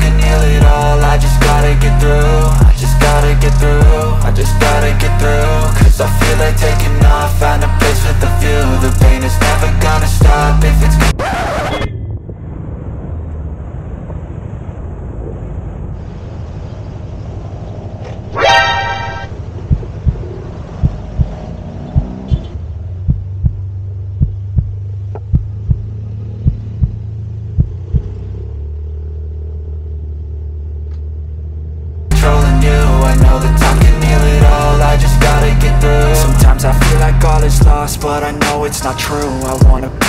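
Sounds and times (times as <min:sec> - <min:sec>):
horn toot: 0:18.3 - 0:19.3.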